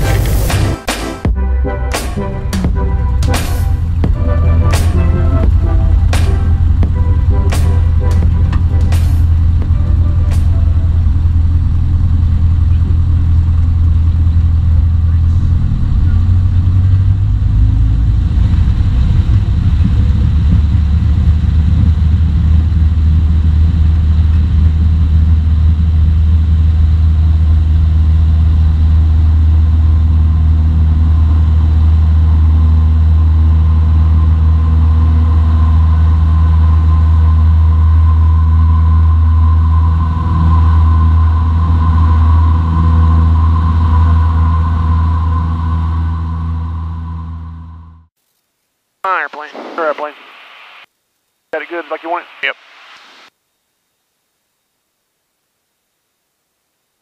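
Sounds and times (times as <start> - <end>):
airplane engine drone: 0.0 - 48.1, 49.1 - 50.9.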